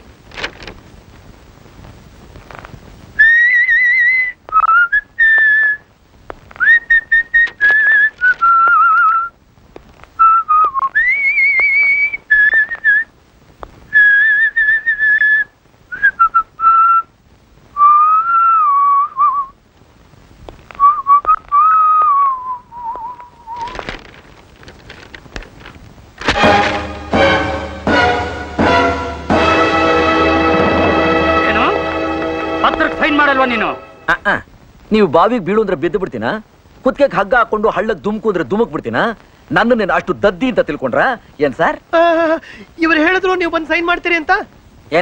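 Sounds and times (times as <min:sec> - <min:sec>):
person whistling a tune: 0:06.6 - 0:09.3, 0:10.2 - 0:13.1, 0:17.8 - 0:19.5, 0:20.8 - 0:23.8.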